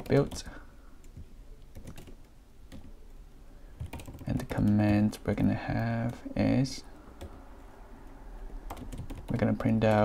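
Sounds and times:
keyboard keystrokes: 0:08.7 - 0:10.0.

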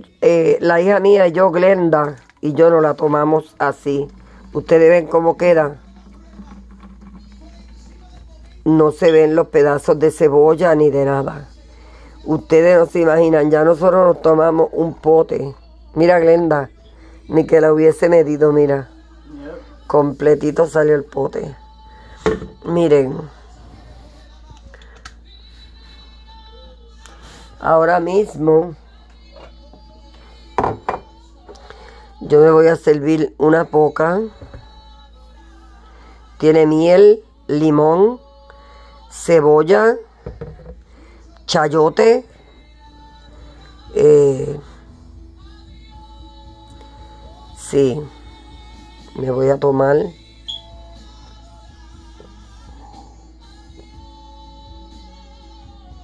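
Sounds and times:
steady low hum: 0:00.0 - 0:29.1
kitchenware knocking on counter: 0:30.6 - 0:31.1, 0:40.2 - 0:40.8.

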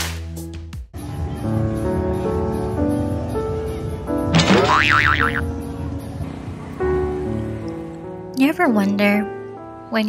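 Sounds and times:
background music: 0:00.0 - 0:10.0
cartoon boing sound effect: 0:04.4 - 0:05.4.

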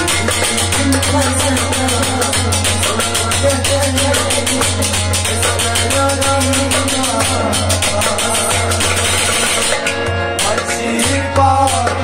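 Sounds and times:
harmonium chords: 0:00.0 - 0:12.0.

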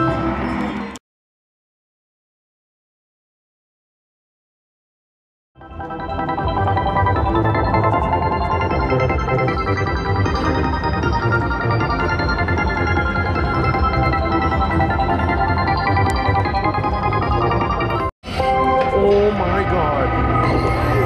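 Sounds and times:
slot machine electronic win music: 0:05.6 - 0:21.0.

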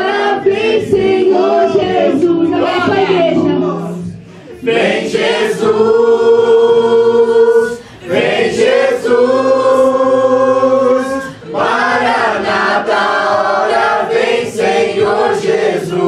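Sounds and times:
young woman's lead vocal: 0:00.0 - 0:04.3
group singing into microphones: 0:00.0 - 0:16.0.

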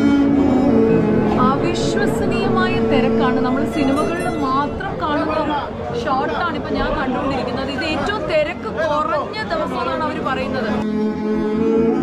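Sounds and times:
background chatter: 0:00.9 - 0:11.0
woman talking: 0:01.3 - 0:10.8.

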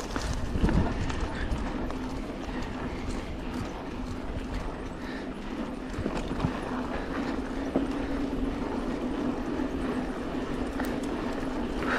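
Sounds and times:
bike tyres on dirt and leaves: 0:00.0 - 0:11.9.

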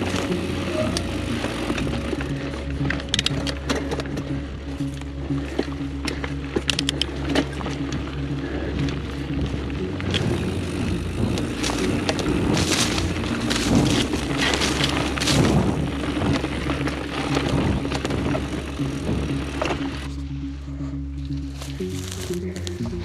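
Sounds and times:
bike rattles and knocks: 0:00.0 - 0:20.2
background music with held tones: 0:00.0 - 0:23.0
bike tyre noise on dirt trail: 0:00.0 - 0:23.0.

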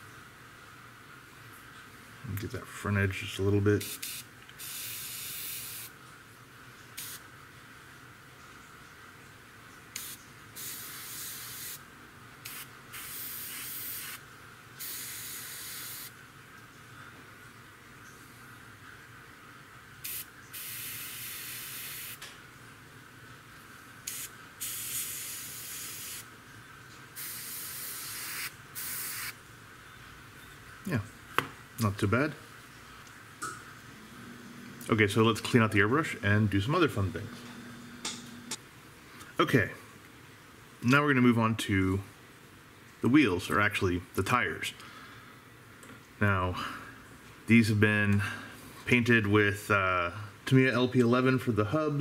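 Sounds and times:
airbrush spraying bursts: 0:03.8 - 0:05.9, 0:07.0 - 0:07.2, 0:10.0 - 0:11.8, 0:12.4 - 0:14.2, 0:14.8 - 0:16.2, 0:20.0 - 0:22.2, 0:24.1 - 0:26.3, 0:27.2 - 0:29.4.

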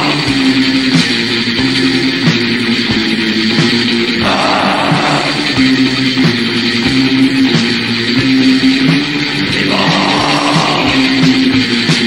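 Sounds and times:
death metal band playing: 0:00.0 - 0:12.0
harsh noisy layer: 0:00.0 - 0:12.0.

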